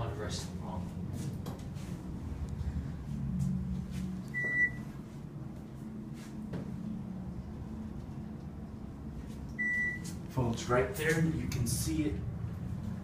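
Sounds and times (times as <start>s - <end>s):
elevator car hum: 0.0s - 13.0s.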